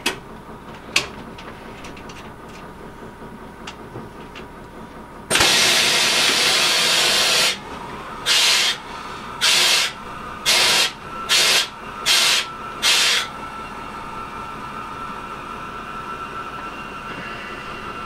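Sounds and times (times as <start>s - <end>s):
compressed air hissing: 5.3s - 7.6s, 8.2s - 13.3s.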